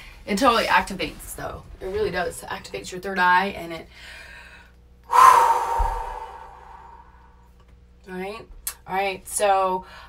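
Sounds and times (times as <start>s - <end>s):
woman sighing: 5.1s - 7.2s.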